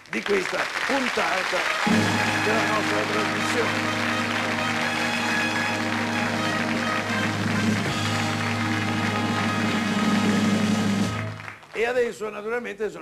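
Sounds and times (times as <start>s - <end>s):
live band playing held chords: 0.9s - 11.6s.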